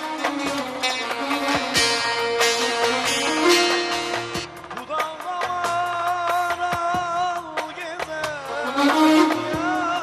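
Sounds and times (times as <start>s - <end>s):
plucked long-necked lute melody: 0.0s - 4.6s.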